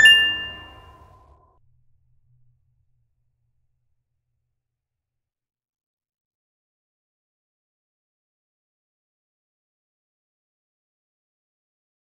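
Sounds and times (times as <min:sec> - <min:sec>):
bright chime ding: 0:00.0 - 0:01.0
music bed: 0:00.0 - 0:01.0.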